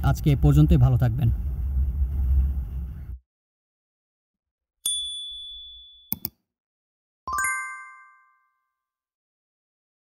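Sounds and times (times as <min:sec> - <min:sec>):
electronic ding: 0:04.9 - 0:06.2, 0:07.3 - 0:08.7.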